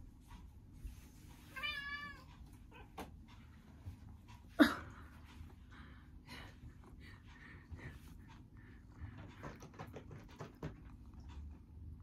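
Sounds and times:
cat meowing: 1.6s - 3.0s.

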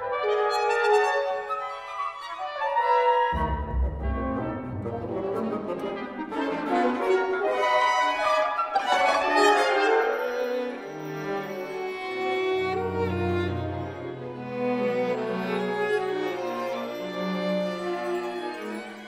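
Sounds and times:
chamber orchestra playing: 0.0s - 19.0s
deep bass part: 3.4s - 5.0s.

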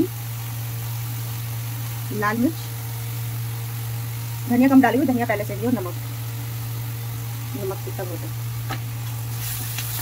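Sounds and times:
spices frying in oil: 0.0s - 10.0s
steady low hum: 0.0s - 10.0s.

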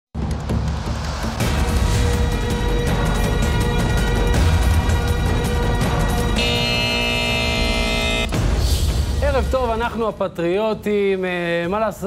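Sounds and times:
television theme music: 0.2s - 12.0s.

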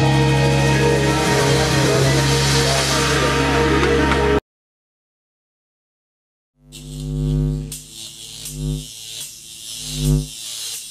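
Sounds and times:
pulsing low electronic buzz: 6.6s - 10.7s.

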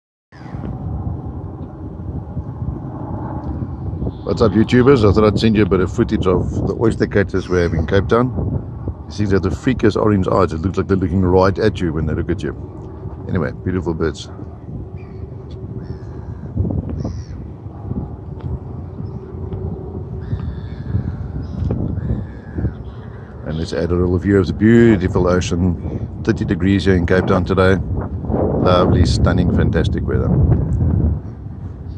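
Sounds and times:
seabirds calling: 0.4s - 0.7s, 3.7s - 5.3s, 7.2s - 8.2s, 14.2s - 26.2s
steady low rumble: 0.4s - 31.9s
wind buffeting microphone: 0.4s - 31.9s.

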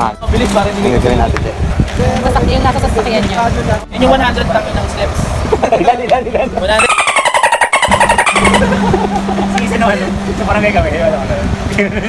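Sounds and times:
buzzing engine: 3.6s - 12.0s
steady low hum: 4.2s - 12.0s.

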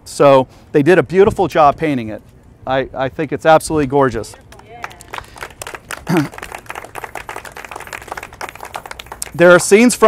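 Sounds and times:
crowd clapping: 4.3s - 10.0s.

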